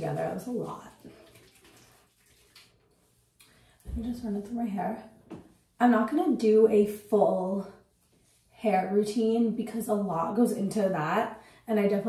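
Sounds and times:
oily palms rubbing: 1.2 - 3.4.

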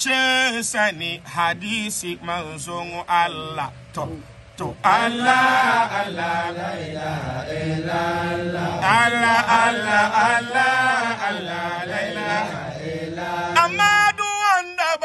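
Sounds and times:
men chanting together: 0.0 - 15.0.

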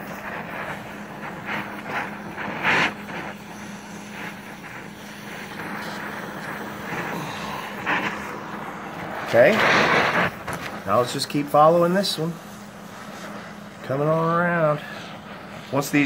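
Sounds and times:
gas torch flame hissing: 0.0 - 16.0
low hum: 0.0 - 16.0.

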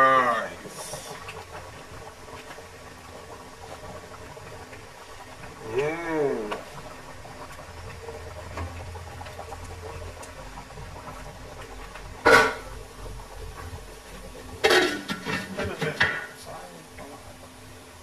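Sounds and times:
curry simmering with low hiss: 0.0 - 18.0.

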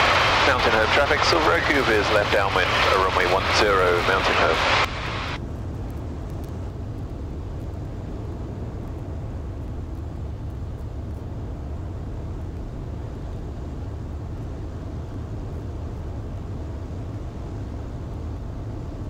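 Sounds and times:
aircraft engine and propeller drone: 0.0 - 19.0.

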